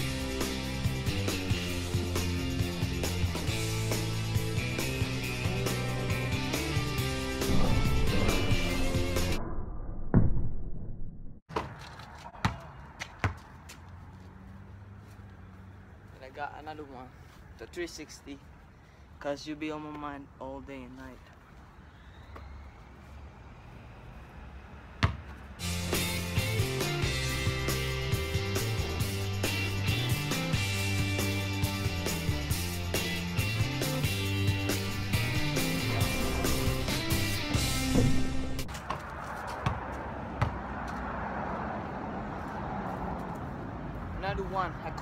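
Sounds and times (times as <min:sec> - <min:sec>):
music with steady beat and bass: 0:00.0 - 0:09.4, 0:25.6 - 0:38.7.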